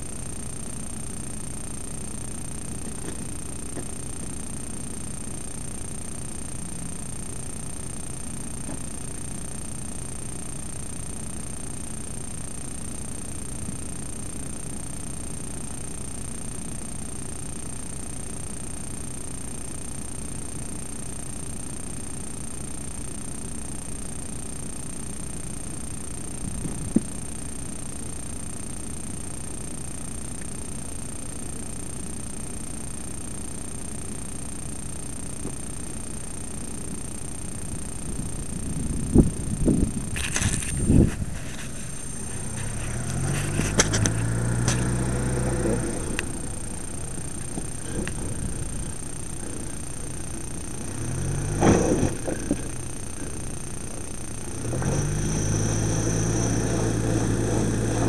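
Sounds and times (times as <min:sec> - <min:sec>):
engine revving: 0:41.7 - 0:58.0.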